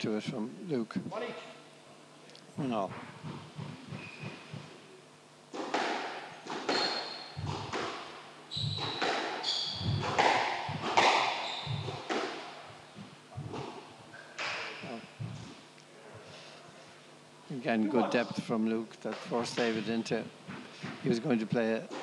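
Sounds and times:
shoes squeaking on wooden floor: 2.7 - 4.8, 6.7 - 7.9, 8.5 - 12.2
squash ball knocks echoing: 5.5 - 15.4.

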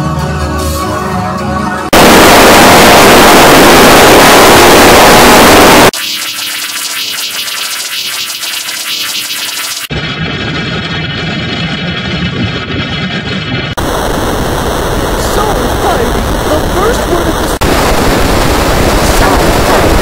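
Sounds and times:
harshly distorted digital music: 1.9 - 9.9
thin filtered wash: 2.0 - 9.9.

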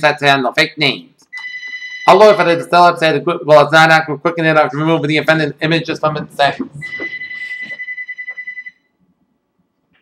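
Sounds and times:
electronic telephone ringer: 1.4 - 2.4, 6.8 - 8.8.

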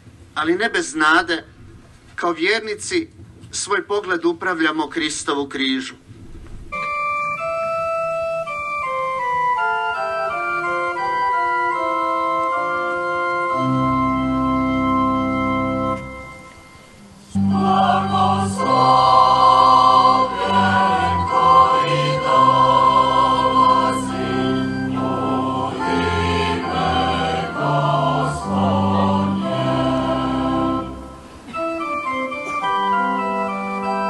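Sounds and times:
sustained organ chords: 6.7 - 34.0
choir singing a slow hymn: 16.4 - 31.7.

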